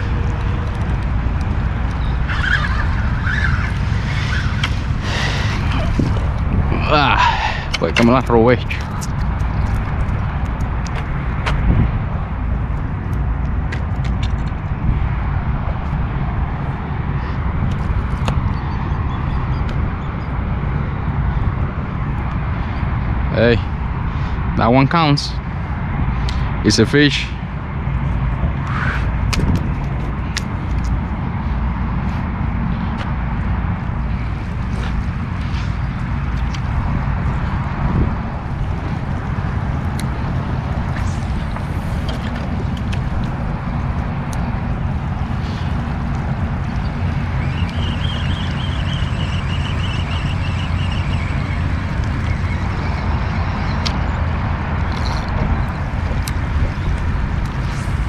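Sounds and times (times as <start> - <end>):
wind buffeting microphone: 0.0 - 58.0
high fluttering whir: 34.2 - 54.2.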